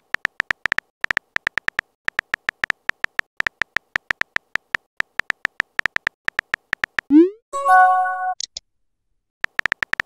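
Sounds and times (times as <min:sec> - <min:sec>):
phone keyboard typing clicks: 0:00.0 - 0:07.1, 0:09.4 - 0:10.0.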